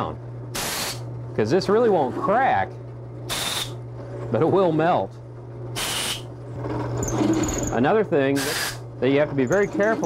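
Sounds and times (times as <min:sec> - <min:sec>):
steady low hum: 0:00.0 - 0:10.0
compressed air burst: 0:00.6 - 0:01.0, 0:03.3 - 0:03.7, 0:05.8 - 0:06.3, 0:08.4 - 0:08.8.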